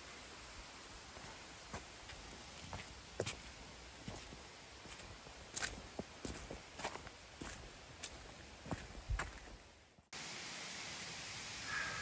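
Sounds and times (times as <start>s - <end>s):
footsteps on leaves and twigs: 1.2s - 9.7s.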